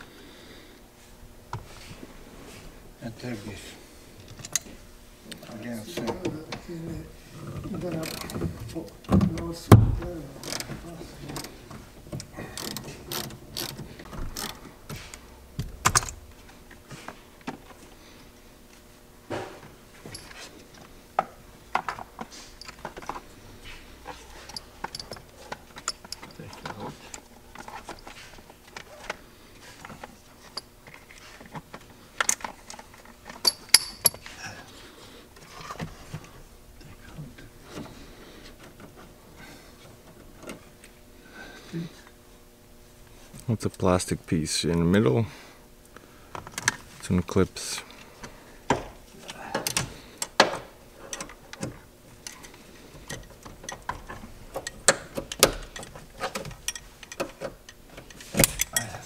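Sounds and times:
hand ratchet clicking: 12.5s - 13.8s.

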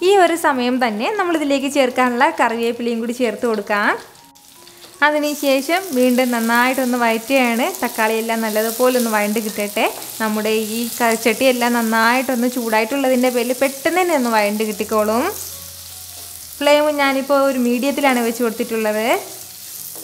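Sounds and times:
food sizzling in oil: 0.0s - 20.0s.

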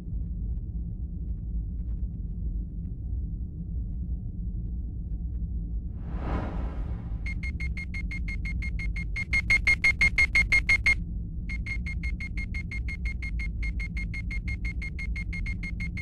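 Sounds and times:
low rumble: 5.7s - 7.7s.

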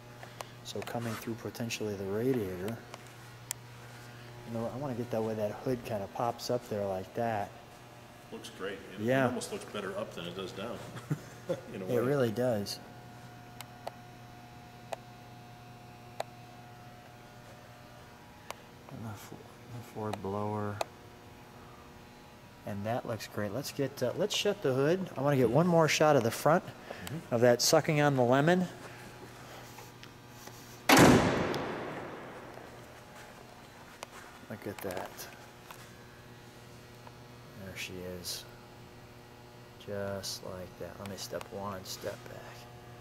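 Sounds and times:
car hood slammed shut: 30.9s - 32.3s
low hum: 31.0s - 34.5s.

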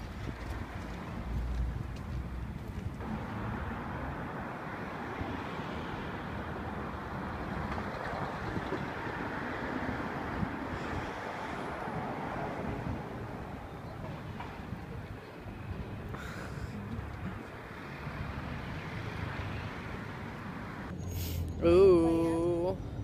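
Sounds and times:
passing road traffic: 0.0s - 23.0s.

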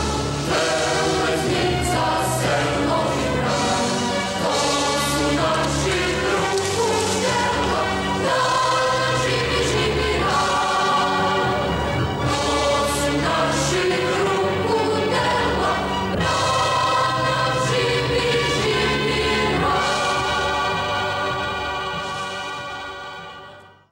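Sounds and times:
choir singing held chords: 0.0s - 23.9s.

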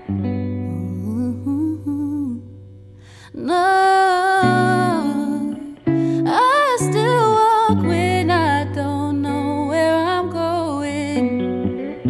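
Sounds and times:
electric guitar chord ringing: 0.0s - 12.0s
woman humming: 0.7s - 2.5s.

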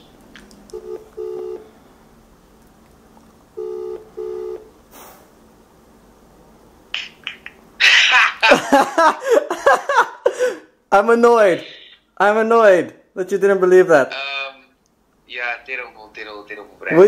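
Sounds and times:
video call ringing tone: 0.7s - 1.7s, 3.6s - 4.7s.

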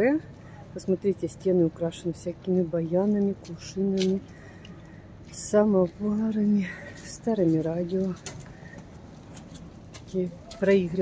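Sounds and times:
woman speaking: 0.0s - 4.2s, 5.3s - 8.3s, 10.1s - 11.0s
low background noise: 0.0s - 11.0s.

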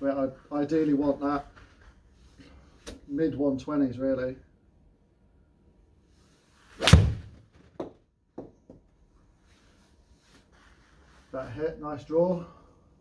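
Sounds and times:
golf club swing whoosh: 6.5s - 7.4s
golf club striking ball: 6.8s - 7.9s.

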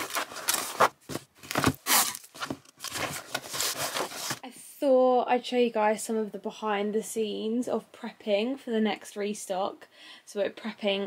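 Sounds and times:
cardboard box scraping and rustling: 0.0s - 4.4s.

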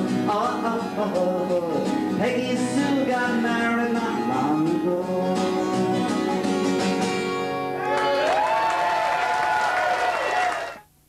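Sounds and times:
acoustic guitar strumming: 0.0s - 7.9s.

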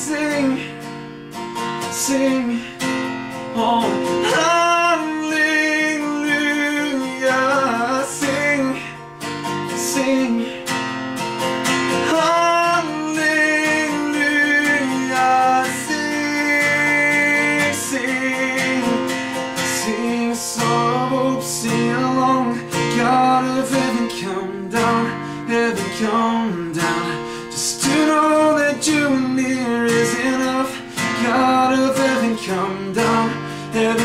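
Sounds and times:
person singing: 0.0s - 0.8s, 1.8s - 10.7s, 12.0s - 34.0s
acoustic guitar strumming: 0.0s - 34.0s.

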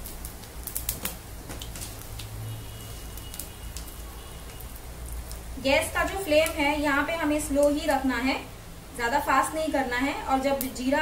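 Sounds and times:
crackles and pops: 0.0s - 5.5s, 6.2s - 6.6s, 10.4s - 10.8s
seeds sizzling in oil: 0.0s - 11.0s.

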